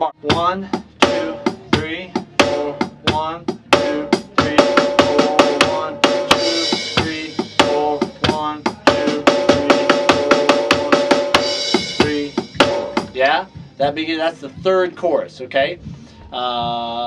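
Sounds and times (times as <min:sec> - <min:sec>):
backing track with sustained chords: 0:00.0 - 0:17.0
electronic drum kit rock beat: 0:00.0 - 0:17.0.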